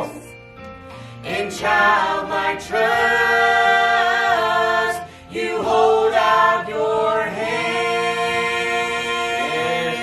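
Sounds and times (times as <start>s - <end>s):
group singing gospel song: 1.2s - 10.0s.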